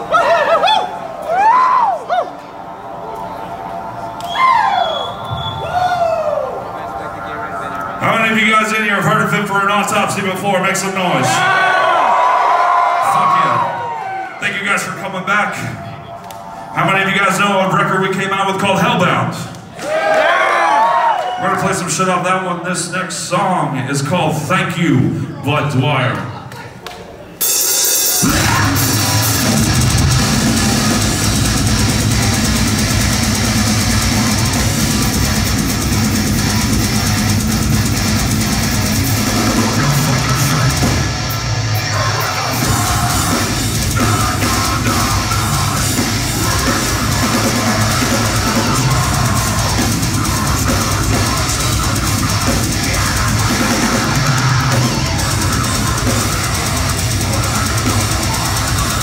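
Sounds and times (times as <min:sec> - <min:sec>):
distorted guitars: 0:27.4 - 0:59.0
pounding drum kit: 0:27.4 - 0:59.0
harsh vocals: 0:28.0 - 0:59.0
bass guitar: 0:28.2 - 0:59.0.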